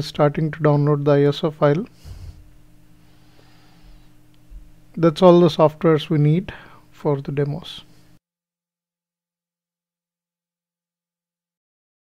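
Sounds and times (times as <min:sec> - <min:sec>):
faint steady hum: 0:00.0 - 0:08.2.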